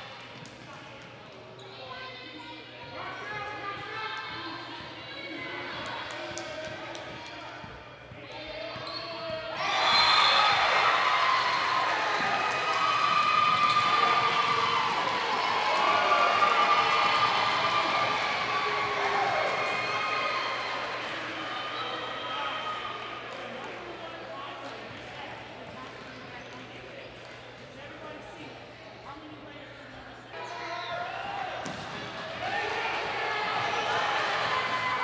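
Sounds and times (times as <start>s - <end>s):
crowd shouting and cheering: 8.4s - 24.1s, 30.4s - 35.0s.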